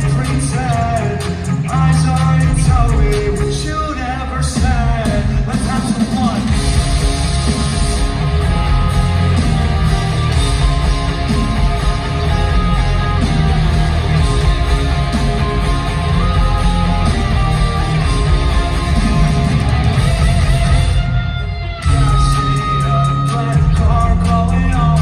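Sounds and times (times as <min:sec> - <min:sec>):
electric guitar: 0:00.0 - 0:25.0
live rock band playing: 0:00.0 - 0:25.0.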